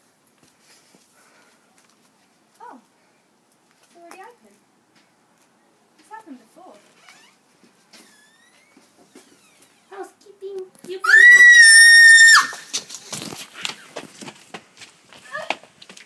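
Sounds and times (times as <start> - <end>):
person screaming: 11.0 - 12.6.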